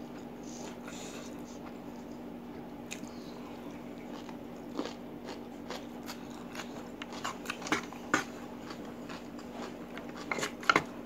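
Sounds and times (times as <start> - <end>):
crunching cucumber bites: 4.0 - 10.9.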